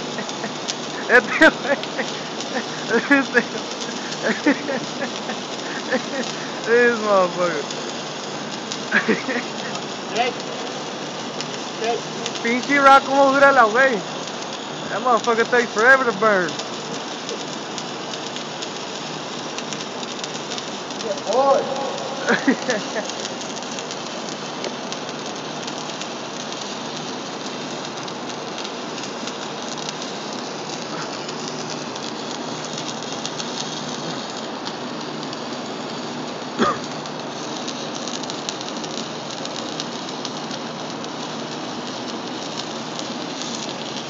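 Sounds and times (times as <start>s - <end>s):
welding arc crackling: 0.0s - 44.0s.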